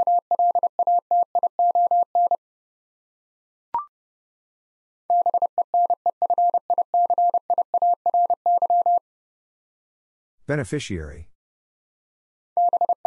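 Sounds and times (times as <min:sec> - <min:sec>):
morse code tone: 0:00.0 - 0:02.4, 0:12.6 - 0:13.0.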